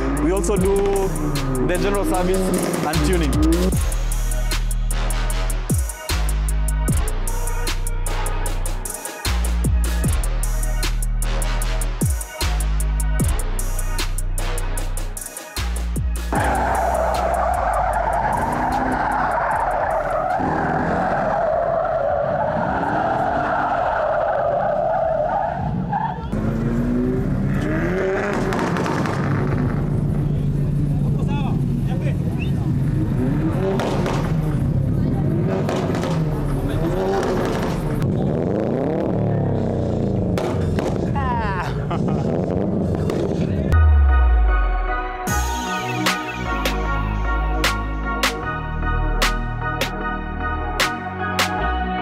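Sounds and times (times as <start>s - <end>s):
car engines revving: 0.0s - 4.7s, 16.3s - 43.8s
car tyres squealing: 16.3s - 30.6s, 32.3s - 41.2s.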